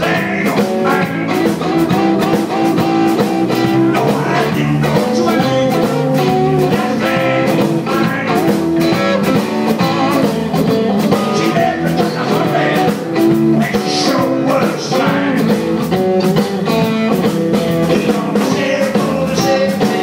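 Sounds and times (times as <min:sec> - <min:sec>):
electric guitar: 0:00.0 - 0:20.0
live blues band playing: 0:00.0 - 0:20.0.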